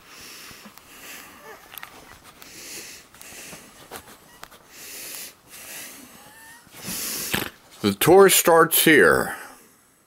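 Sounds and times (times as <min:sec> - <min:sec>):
person breathing: 0:00.0 - 0:01.7, 0:02.3 - 0:03.9, 0:04.6 - 0:07.6.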